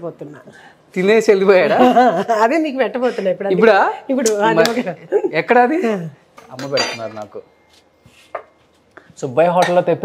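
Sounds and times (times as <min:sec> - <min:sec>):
metal utensils and dishes clinking: 0:06.5 - 0:07.3.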